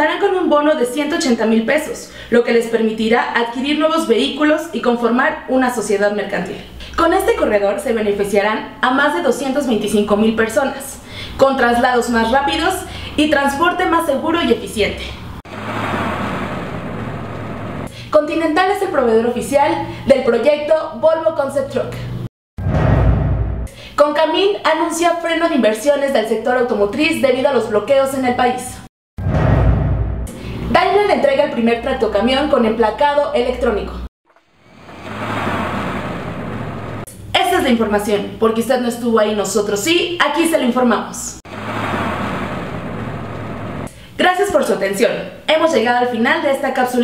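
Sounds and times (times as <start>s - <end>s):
rushing noise: 15.3s - 17.9s, 34.5s - 37.1s, 41.5s - 43.9s
truck engine humming: 15.5s - 17.9s, 34.6s - 37.1s, 41.5s - 43.9s.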